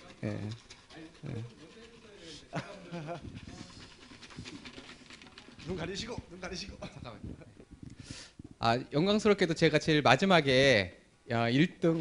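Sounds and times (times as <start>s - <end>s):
breath into microphone: 7.8s - 8.5s.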